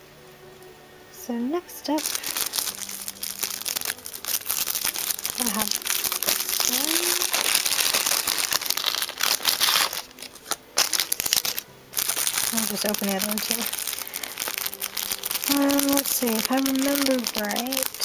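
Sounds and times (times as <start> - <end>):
plastic packaging crinkling: 1.9 - 18.0.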